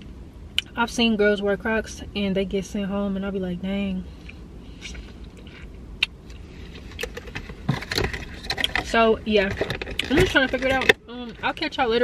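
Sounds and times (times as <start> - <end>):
low steady rumble: 0.0 - 12.0
clicks taps and rustles: 6.8 - 11.0.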